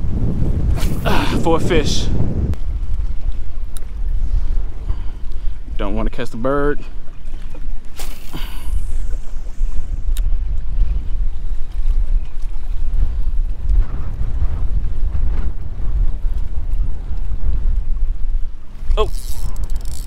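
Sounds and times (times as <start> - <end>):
choppy water: 0.0 - 20.0
wind buffeting microphone: 0.0 - 20.0.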